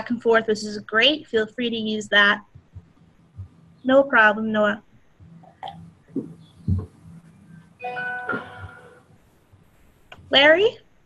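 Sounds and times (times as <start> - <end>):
faint steady hum: 0.0 - 11.0
soft low thumps: 2.1 - 10.3
electronic two-note chime: 7.8 - 9.0.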